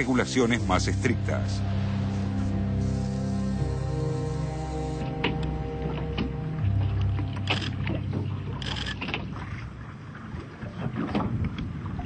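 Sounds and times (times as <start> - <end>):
background music: 0.0 - 9.9
boat motor hum: 0.0 - 12.0
water splashing: 1.6 - 12.0.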